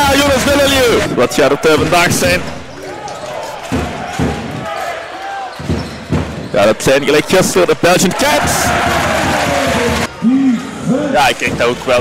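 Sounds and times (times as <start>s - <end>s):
sneaker squeaks: 5.4s - 6.7s
basketball bouncing on hardwood: 5.6s - 6.5s.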